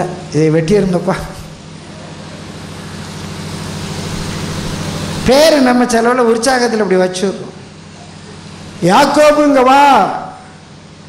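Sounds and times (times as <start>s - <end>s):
steady noise: 0.0s - 10.6s
low electrical hum: 0.0s - 11.0s.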